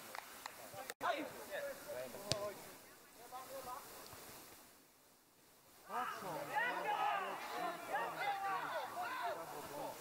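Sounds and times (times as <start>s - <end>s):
faint open-air hiss: 0.0s - 10.0s.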